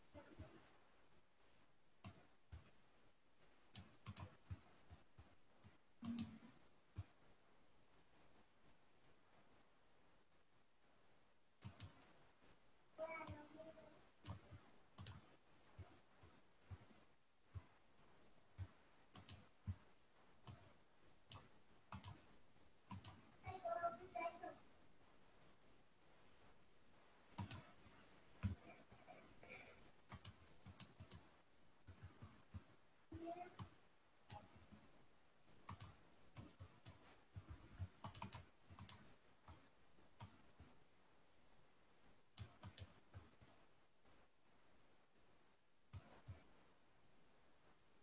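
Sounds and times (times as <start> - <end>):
computer mouse clicking: 2.0 - 2.8, 3.7 - 7.2, 11.6 - 12.2, 13.1 - 17.7, 18.6 - 23.3, 27.3 - 28.8, 29.5 - 34.9, 35.6 - 40.7, 42.3 - 43.6, 45.9 - 46.4.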